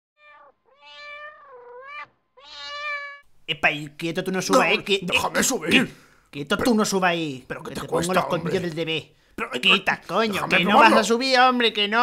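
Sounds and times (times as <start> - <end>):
cat meowing: 0.2 - 3.2
person speaking: 3.5 - 12.0.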